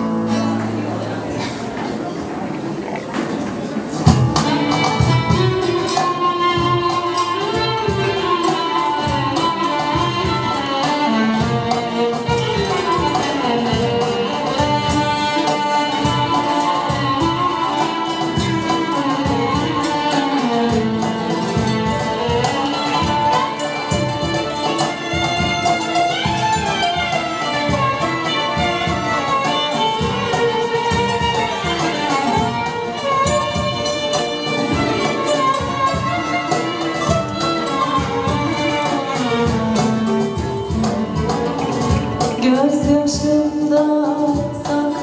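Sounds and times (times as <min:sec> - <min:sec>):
instrumental ensemble melody: 0:00.0 - 0:45.0
plucked strings: 0:00.0 - 0:45.0
steady percussion beat: 0:03.0 - 0:45.0.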